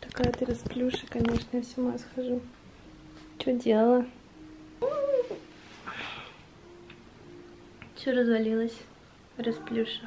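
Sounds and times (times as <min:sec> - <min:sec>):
soft breathy noise: 0:05.5 - 0:06.6.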